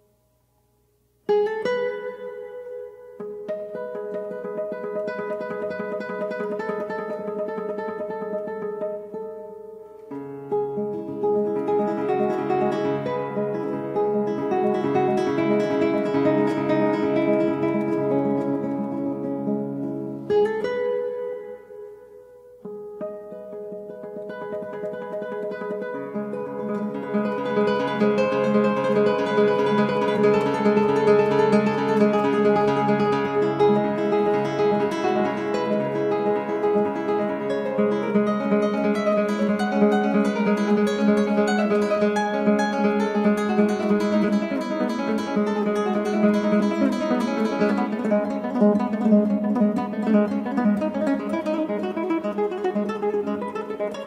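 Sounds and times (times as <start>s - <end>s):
classical guitar arpeggios: 0.0s - 54.0s.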